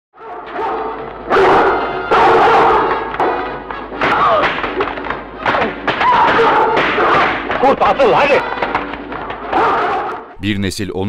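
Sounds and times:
voices shouting: 0.2 - 10.4
film music: 0.2 - 10.5.

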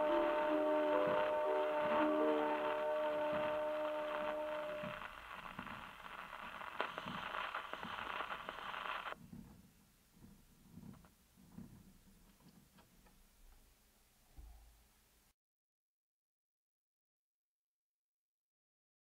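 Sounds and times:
record final note: 0.0 - 5.7
record surface hiss with swish: 0.0 - 9.2.

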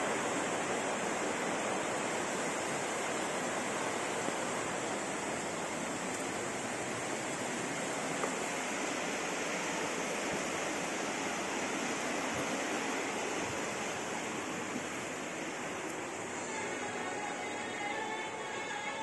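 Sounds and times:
steady rushing noise: 0.0 - 19.0.

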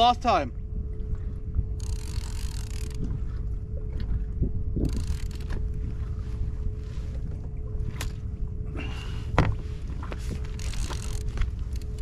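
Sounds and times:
faint steady hum: 0.0 - 12.0
wind rumbling on microphone: 0.0 - 12.0.

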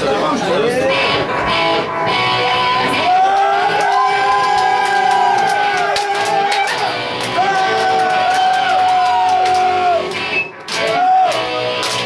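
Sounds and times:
audience crowd noise: 0.0 - 12.0.

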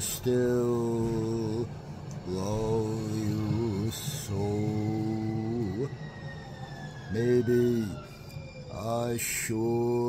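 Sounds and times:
man singing ballad: 0.0 - 5.9, 7.1 - 10.0.

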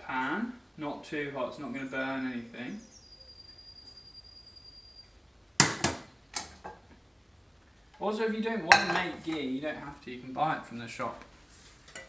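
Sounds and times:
faint steady high tone: 1.8 - 5.3.

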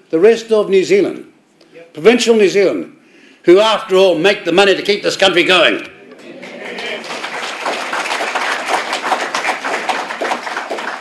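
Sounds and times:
audience applauding: 6.2 - 11.0.

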